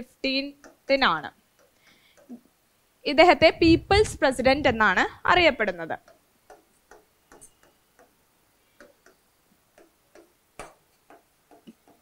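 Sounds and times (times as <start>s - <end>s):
stylus tapping and scratching on board: 0.6s - 2.4s, 6.0s - 8.2s, 8.8s - 12.0s.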